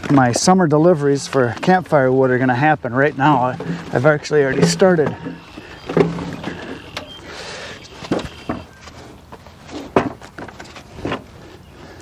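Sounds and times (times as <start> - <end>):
wood scraping: 1.1 - 12.0
wood knocking and clattering: 3.2 - 7.0, 9.8 - 11.2.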